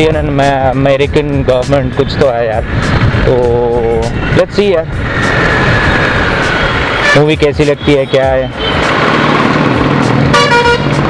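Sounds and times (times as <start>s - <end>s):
road traffic: 0.0s - 11.0s
vehicle horn honking: 6.9s - 7.3s, 8.5s - 8.9s, 10.3s - 11.0s.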